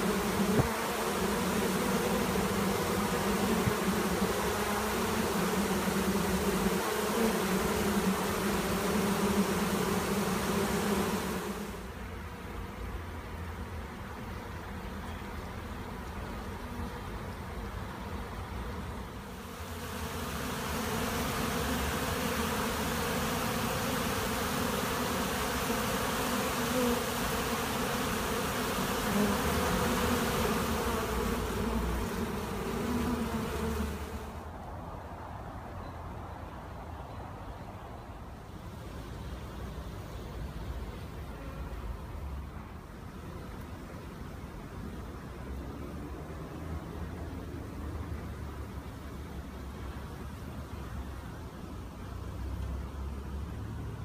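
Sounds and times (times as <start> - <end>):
swarm of bees buzzing: 0.0 - 12.9, 16.1 - 34.5.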